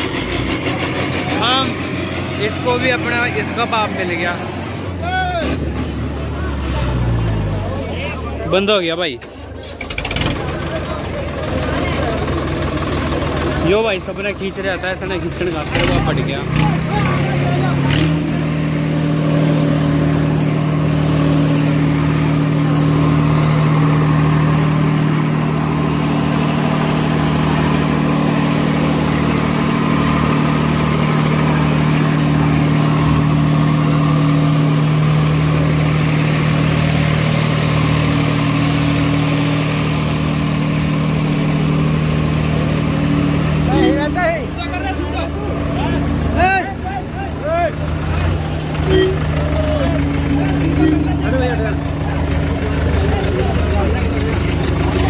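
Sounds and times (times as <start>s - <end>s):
diesel tractor engines under load: 0.0s - 55.0s
people shouting: 5.0s - 5.6s, 48.8s - 51.6s.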